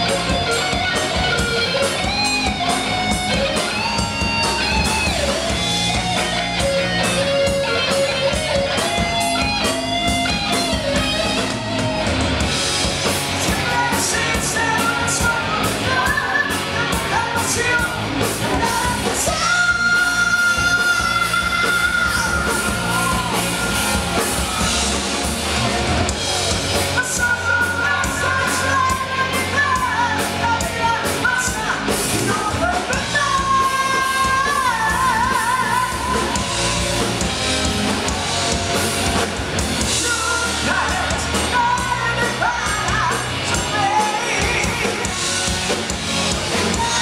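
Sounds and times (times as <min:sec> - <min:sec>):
live rock band playing: 0:00.0 - 0:47.0.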